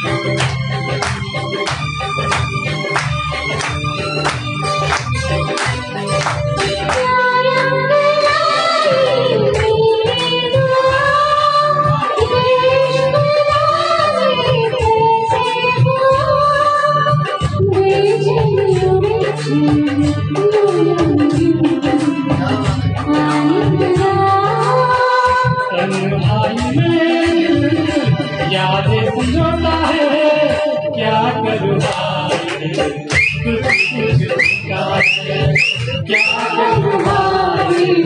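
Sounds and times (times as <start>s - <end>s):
karaoke backing track: 0.0s - 38.0s
woman singing into a microphone: 6.8s - 38.0s.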